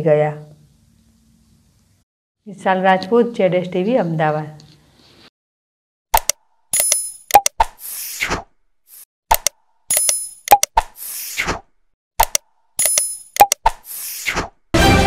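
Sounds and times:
mouse clicks: 9.3 - 10.9, 12.2 - 13.8.

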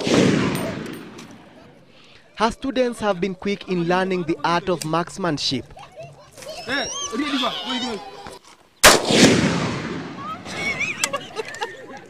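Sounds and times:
rifle shot echoing: 0.0 - 1.6, 8.8 - 11.1.

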